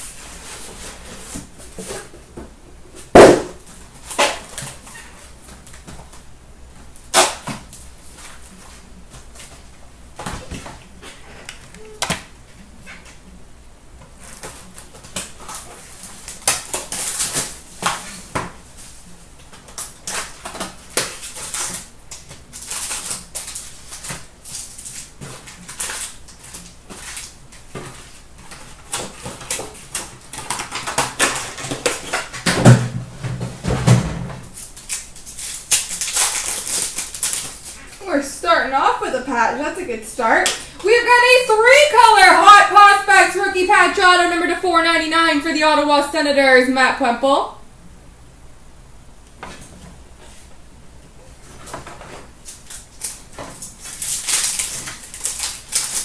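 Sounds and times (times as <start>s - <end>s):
rustling card pack wrappers: 34.5s - 38.0s, 51.3s - 56.0s.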